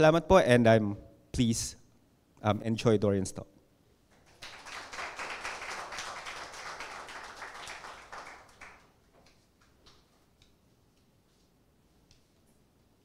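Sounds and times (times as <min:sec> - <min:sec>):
audience clapping: 0:04.1 - 0:09.4.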